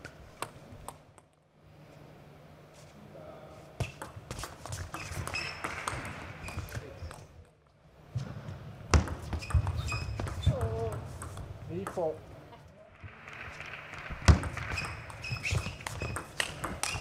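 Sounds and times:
shoes squeaking on floor: 0:03.8 - 0:07.0, 0:09.2 - 0:10.9, 0:14.6 - 0:17.0
table tennis ball clicking: 0:14.3 - 0:17.0.

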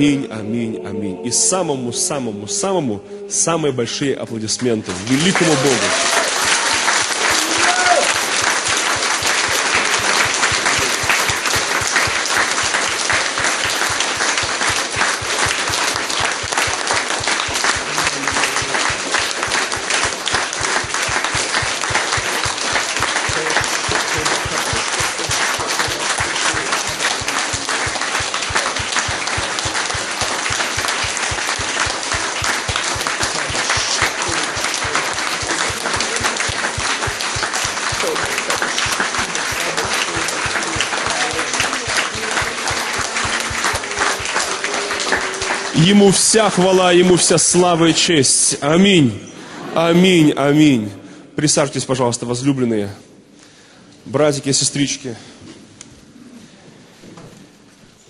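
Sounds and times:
congregation applauding: 0:04.5 - 0:48.6.

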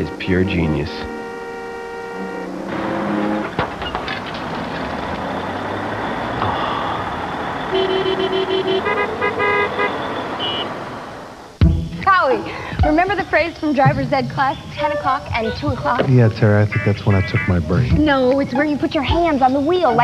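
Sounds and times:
car horn toots: 0:00.0 - 0:04.2, 0:05.1 - 0:11.2, 0:16.2 - 0:17.8
street traffic noise: 0:00.0 - 0:20.0.

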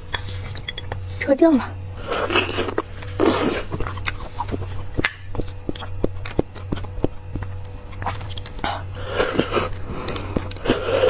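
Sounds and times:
low steady hum: 0:00.0 - 0:11.0
sticky mouth chewing clicks: 0:03.7 - 0:08.8.

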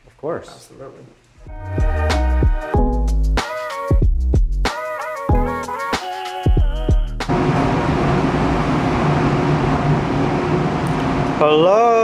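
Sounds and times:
music: 0:01.4 - 0:07.3
mechanical drone with low hum: 0:07.0 - 0:12.0.

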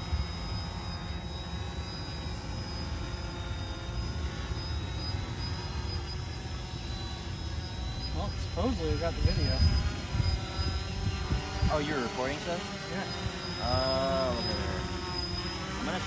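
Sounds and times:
drone motors whining: 0:00.0 - 0:16.0.

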